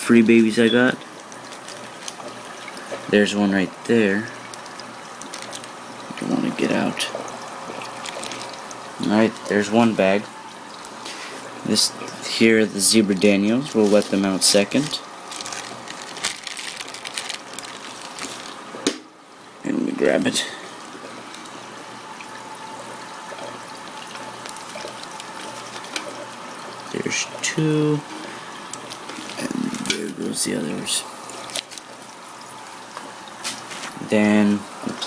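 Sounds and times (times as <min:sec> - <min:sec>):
water trickling into aquarium: 0:00.0 - 0:35.0
plastic bag crinkling: 0:01.2 - 0:03.1, 0:04.4 - 0:06.0, 0:07.7 - 0:09.6, 0:13.6 - 0:18.9, 0:24.0 - 0:26.4, 0:28.7 - 0:30.2, 0:31.3 - 0:32.1.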